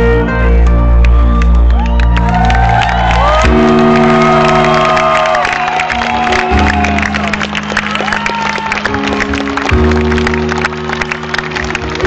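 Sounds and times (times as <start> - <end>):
crowd cheering and whooping: 1.0 - 12.0.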